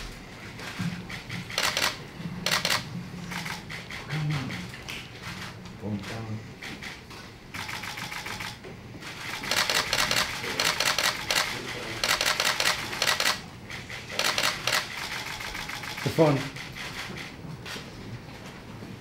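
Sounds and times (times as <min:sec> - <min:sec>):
camera shutters firing in bursts: 0:01.0 - 0:17.8.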